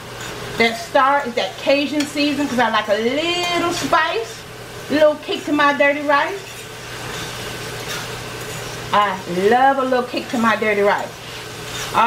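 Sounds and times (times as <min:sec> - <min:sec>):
beef sizzling in a skillet: 0:00.0 - 0:12.0
fork stirring: 0:06.3 - 0:09.0, 0:10.1 - 0:12.0.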